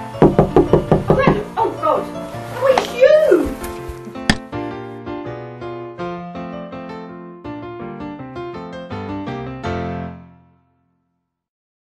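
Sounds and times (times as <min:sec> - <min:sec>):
light background music: 0:00.0 - 0:10.2
fist knocking: 0:00.2 - 0:01.4.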